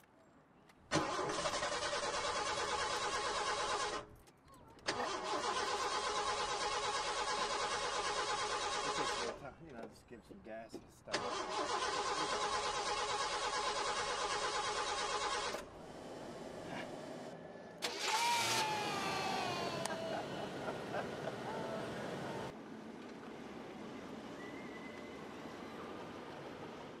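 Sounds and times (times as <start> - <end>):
car engine cranking: 0.9 - 4.1, 4.8 - 9.4, 11.1 - 15.7, 17.8 - 21.4
high falling tone: 18.0 - 22.5.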